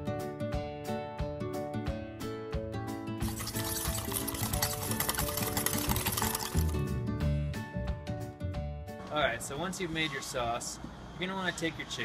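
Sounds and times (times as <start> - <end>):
acoustic guitar music: 3.0 - 7.5
spice rub poured into a bowl: 3.2 - 7.0.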